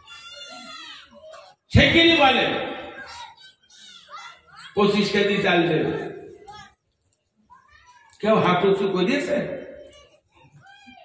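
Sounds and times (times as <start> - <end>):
man's voice through a microphone: 1.7 - 3.2, 4.7 - 6.4, 8.2 - 9.8.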